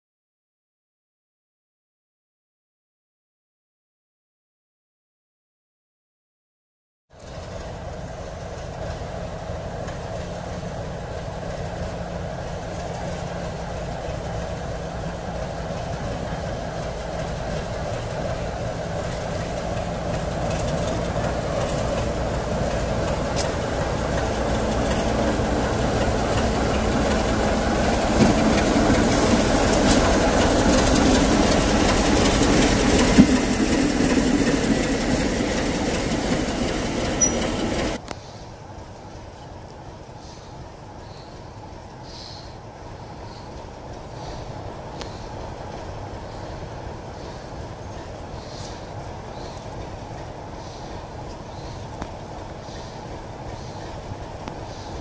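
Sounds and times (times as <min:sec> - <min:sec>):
diesel locomotive engine running: 0:07.2 - 0:55.0.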